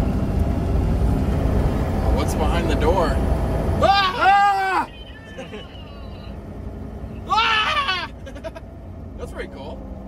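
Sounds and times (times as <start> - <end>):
vehicle engine and road noise: 0.0 - 10.0
wavering wordless vocal exclamation: 3.8 - 6.4.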